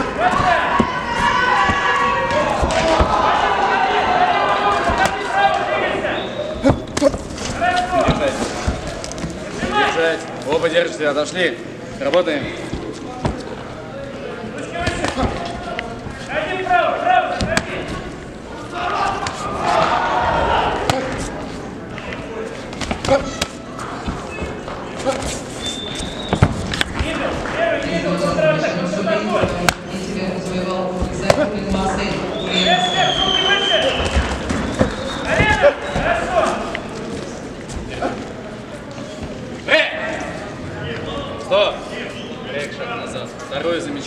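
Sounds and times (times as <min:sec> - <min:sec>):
people shouting: 0:00.0 - 0:08.3, 0:18.6 - 0:21.3.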